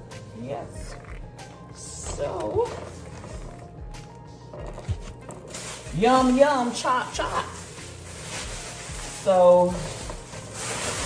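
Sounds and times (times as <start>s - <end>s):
quiet background music: 0.0s - 11.0s
plastic packaging crinkling: 4.4s - 11.0s.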